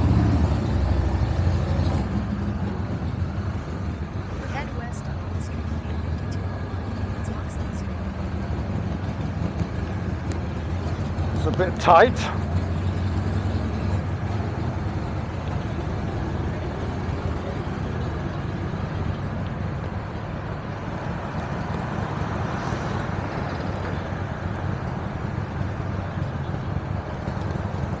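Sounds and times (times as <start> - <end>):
city street traffic: 0.0 - 28.0.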